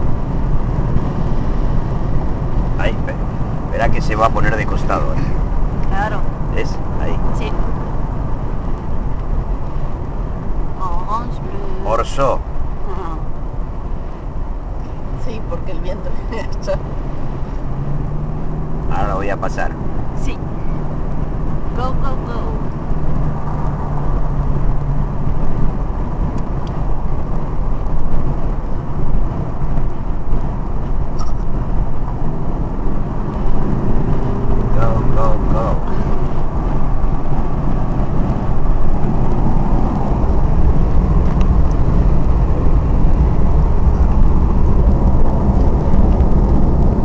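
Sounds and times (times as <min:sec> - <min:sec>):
road and wind noise in car: 0:00.0 - 0:47.0.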